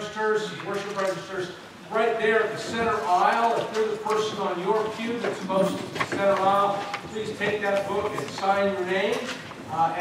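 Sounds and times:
man talking into microphone: 0:00.0 - 0:10.0.

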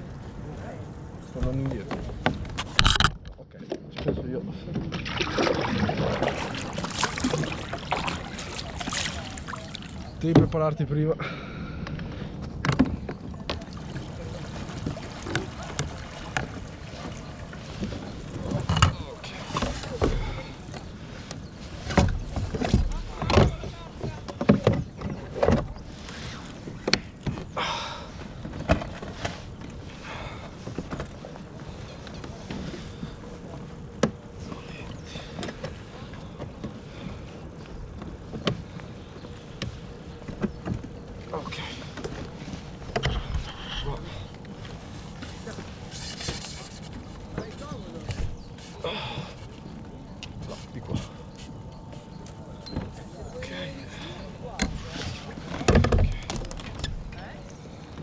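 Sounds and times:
water against hull: 0:00.0 - 0:58.0.

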